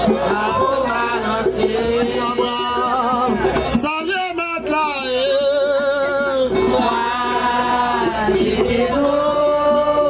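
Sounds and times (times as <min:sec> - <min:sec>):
women singing: 0:00.0 - 0:03.5, 0:05.0 - 0:10.0.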